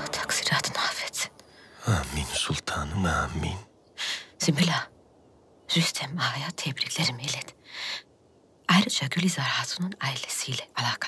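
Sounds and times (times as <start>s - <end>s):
person whispering: 0.0s - 4.2s.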